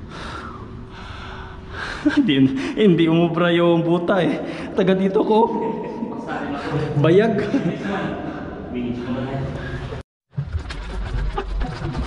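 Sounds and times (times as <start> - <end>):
man breathing heavily: 0.0 - 2.8.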